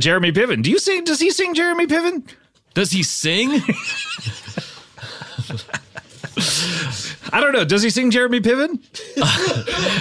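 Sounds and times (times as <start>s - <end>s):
people laughing: 3.4s - 7.5s, 9.0s - 10.0s.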